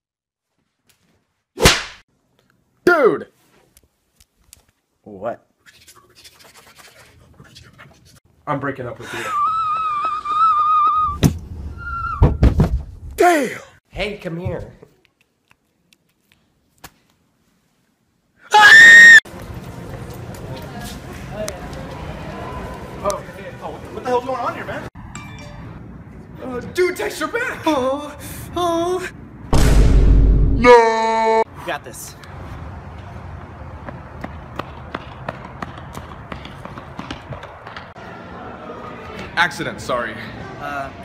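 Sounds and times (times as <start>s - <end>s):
young man screaming: 18.5s - 19.2s, 30.6s - 31.4s
skateboard wheels rumbling: 33.4s - 38.0s.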